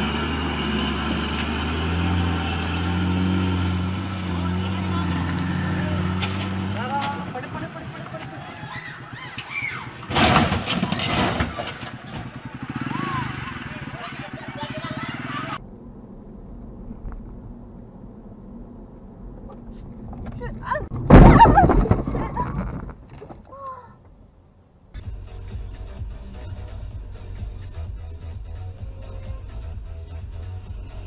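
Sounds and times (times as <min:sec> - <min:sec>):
car road and engine noise: 0:00.0 - 0:31.0
truck toppling crash: 0:01.2 - 0:12.9, 0:20.9 - 0:23.5
loud car collision: 0:01.3 - 0:13.3, 0:20.9 - 0:22.9
people shouting: 0:08.2 - 0:10.1, 0:12.7 - 0:15.6.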